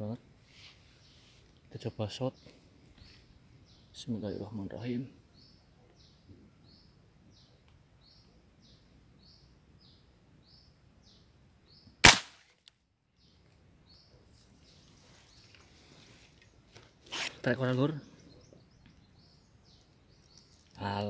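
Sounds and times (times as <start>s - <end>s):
spear gun snap: 12.0s - 12.5s.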